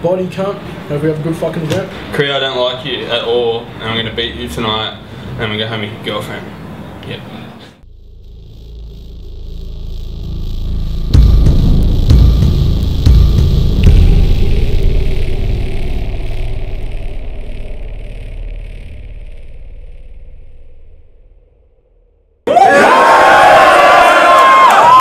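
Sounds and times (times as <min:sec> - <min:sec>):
heavy bass hits: 0:07.8 - 0:22.4
rumbling swell: 0:07.8 - 0:22.4.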